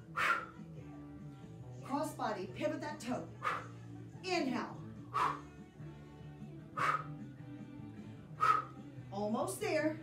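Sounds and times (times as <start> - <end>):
sharp exhaled breaths: 0.0 - 0.7, 3.4 - 3.9, 5.1 - 5.6, 6.7 - 7.3, 8.1 - 8.8
background music: 0.0 - 10.0.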